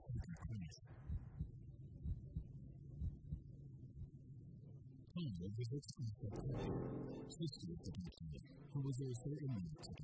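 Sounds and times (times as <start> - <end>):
quiet low hum: 0.0 - 10.0.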